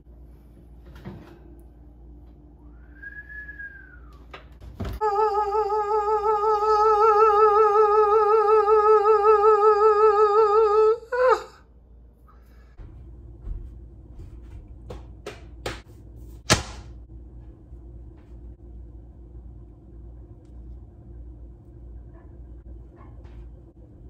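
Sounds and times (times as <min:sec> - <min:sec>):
faint steady hum: 0:00.0 - 0:24.0
person singing long note with vibrato: 0:05.0 - 0:11.6.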